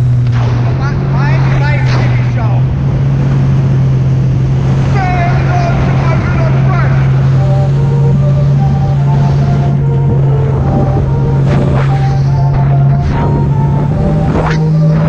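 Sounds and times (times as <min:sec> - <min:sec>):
jet ski engine droning: 0:00.0 - 0:15.0
rushing water: 0:00.0 - 0:15.0
wind: 0:00.0 - 0:15.0.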